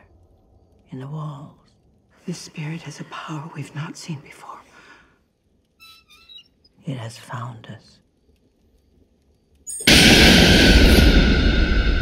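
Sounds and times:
cinematic impact hit with ringing: 9.8 - 12.0.

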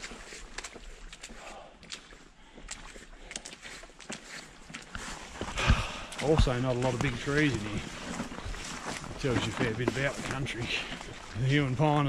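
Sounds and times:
footsteps on leaves and twigs: 0.0 - 12.0.

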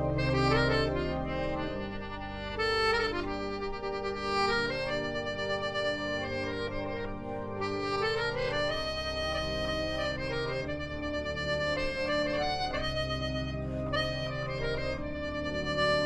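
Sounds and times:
sustained low notes: 0.0 - 5.0
melodica melody: 0.0 - 16.0.

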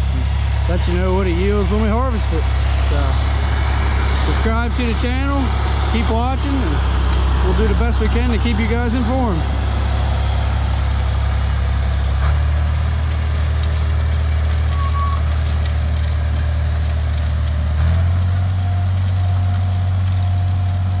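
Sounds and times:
tractor engine droning: 0.0 - 21.0.

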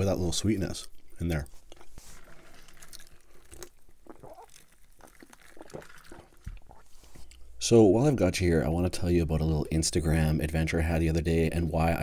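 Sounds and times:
close chewing mouth sounds: 0.8 - 7.5
small mouth clicks: 3.5 - 7.4.

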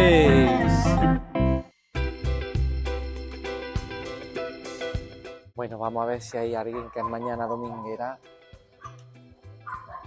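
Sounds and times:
faint background music: 5.6 - 10.0.

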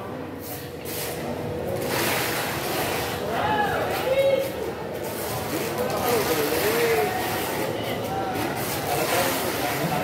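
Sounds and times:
steady surrounding noise: 0.0 - 10.0.

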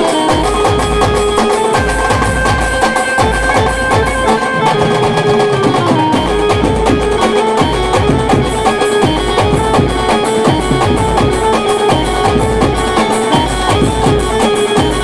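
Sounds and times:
brass and keyboard melody: 0.0 - 15.0
dense drumming: 0.5 - 15.0
deep bass beat: 9.4 - 14.4.

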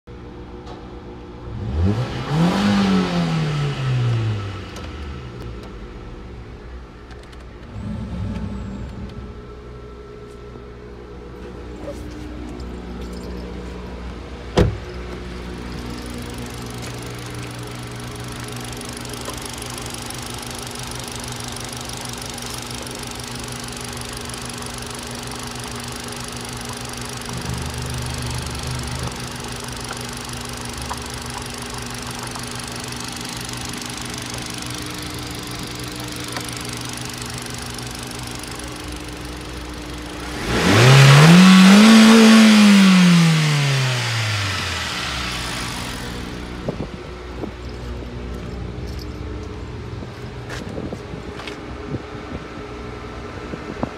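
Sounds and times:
car engine idling and revving: 0.1 - 53.9.

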